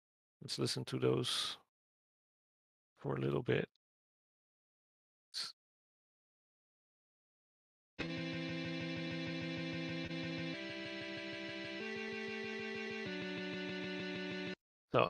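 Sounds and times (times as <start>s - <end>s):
distorted electric guitar chords: 8.0s - 14.6s.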